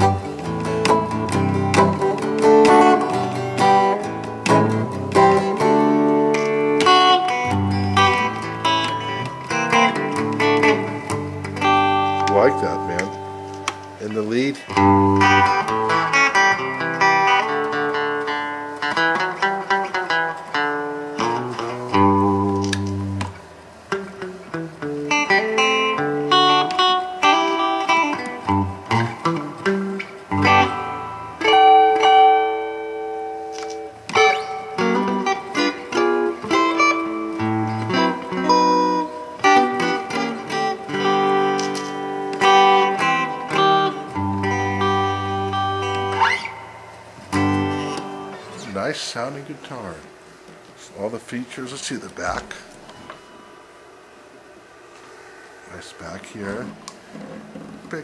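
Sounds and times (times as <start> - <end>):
electric guitar licks and chords: 0.0 - 51.4, 52.0 - 58.0.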